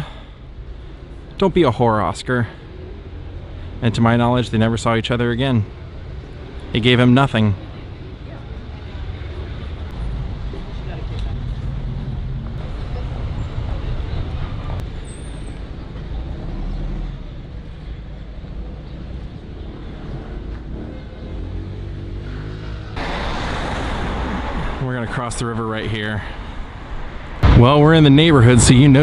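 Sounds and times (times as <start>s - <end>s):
faint voices of passers-by: 0.0s - 23.0s
road traffic rumble: 0.0s - 29.0s.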